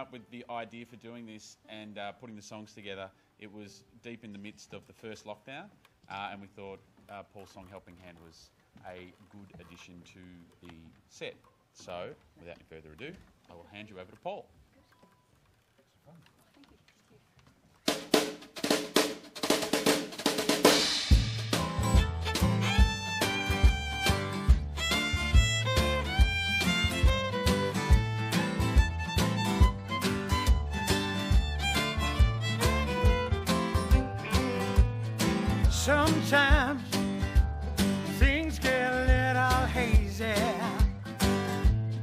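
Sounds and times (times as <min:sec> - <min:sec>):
drum clicks: 0:14.9 - 0:36.7
acoustic guitar: 0:17.8 - 0:42.0
upright bass: 0:21.1 - 0:42.0.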